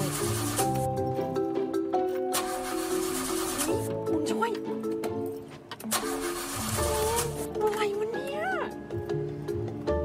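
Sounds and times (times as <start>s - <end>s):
background music with sustained notes: 0.0s - 10.0s.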